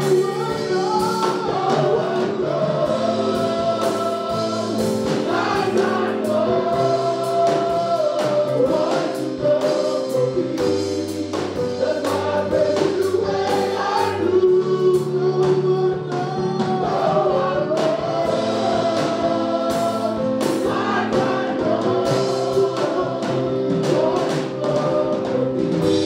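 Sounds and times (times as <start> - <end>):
group singing gospel: 0.0 - 26.0
steady drum beat: 0.0 - 26.0.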